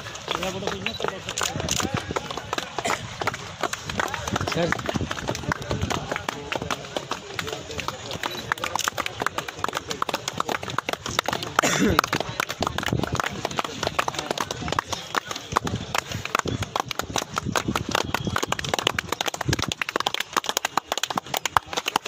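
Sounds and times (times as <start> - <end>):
crowd chatter: 0.0 - 22.0
hand clapping: 0.0 - 22.0.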